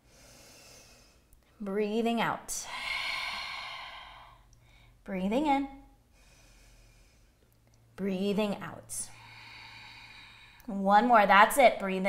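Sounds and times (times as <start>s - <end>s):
woman exhaling: 2.6s - 4.9s.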